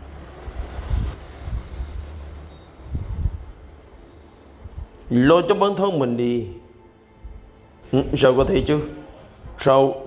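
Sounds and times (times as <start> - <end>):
low rumbling: 0.0 - 5.4.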